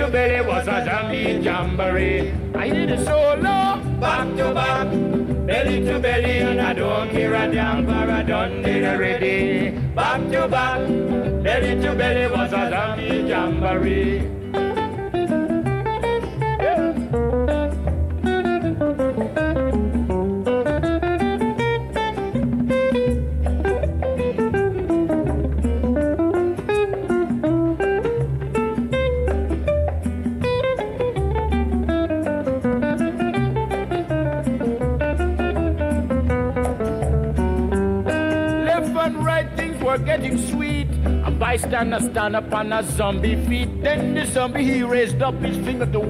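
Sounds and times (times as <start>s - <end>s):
plucked guitar melody: 0.0s - 46.0s
pulsing bass line: 0.0s - 46.0s.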